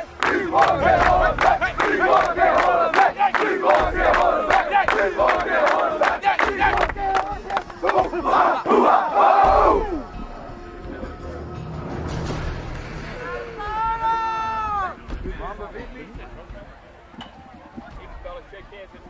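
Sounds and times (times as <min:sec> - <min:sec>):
team chanting and yelling: 0:00.0 - 0:11.6
sharp rhythmic hits: 0:00.0 - 0:16.6
long shout: 0:13.6 - 0:15.0.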